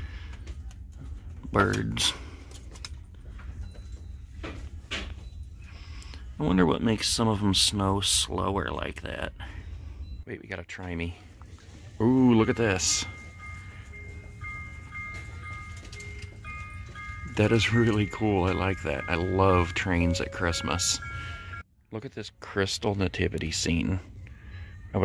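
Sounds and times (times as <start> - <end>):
steady low hum: 0.0 - 25.0
toy playing chime-like electronic tune: 12.0 - 21.6.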